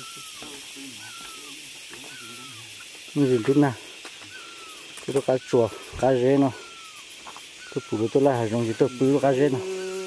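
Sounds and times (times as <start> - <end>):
high falling call: 0.0 - 9.4
person talking: 3.2 - 3.8, 7.8 - 9.6.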